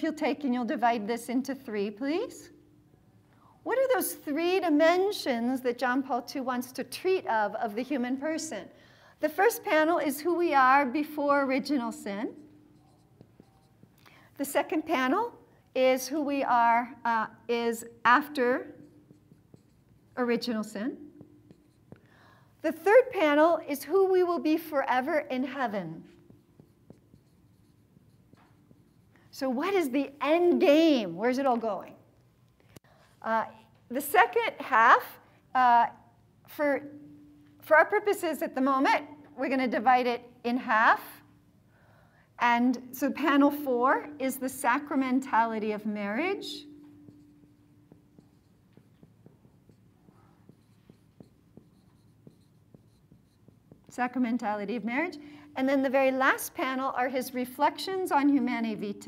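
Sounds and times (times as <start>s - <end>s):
marker writing on whiteboard: 9.3s - 32.9s, 43.0s - 56.9s
marker tip tapping: 12.4s - 14.1s, 18.8s - 20.1s, 46.7s - 54.0s.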